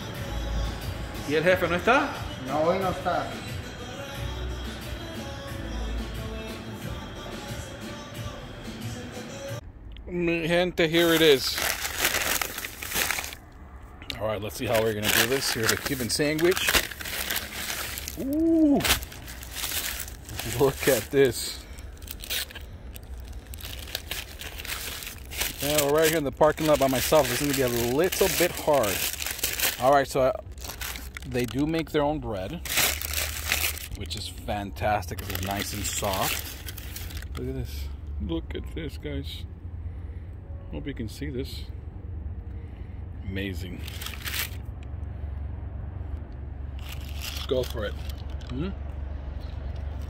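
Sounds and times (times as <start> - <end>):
low steady rumble: 9.5 - 50.0
paper wrapping crinkling: 11.0 - 13.4, 14.6 - 31.7, 32.6 - 34.3, 34.9 - 37.5, 43.8 - 44.6, 46.8 - 48.4.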